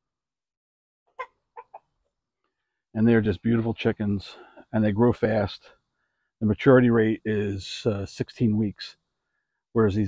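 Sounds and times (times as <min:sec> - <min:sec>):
chickens clucking: 0:01.1 - 0:02.1.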